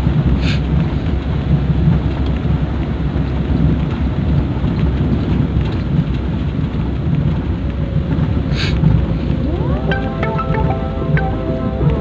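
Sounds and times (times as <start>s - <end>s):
vehicle engine and road noise: 0.0s - 9.8s.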